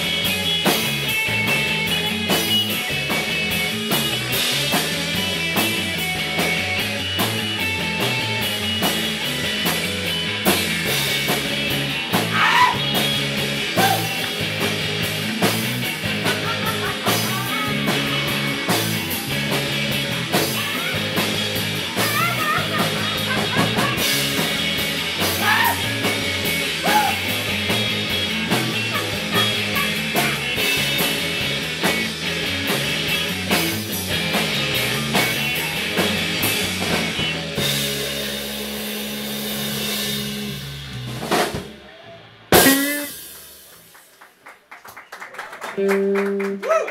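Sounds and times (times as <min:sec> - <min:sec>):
drum and cymbal hits: 0:00.0 - 0:41.8, 0:42.5 - 0:44.1
electric guitars: 0:00.0 - 0:44.1, 0:45.6 - 0:46.9.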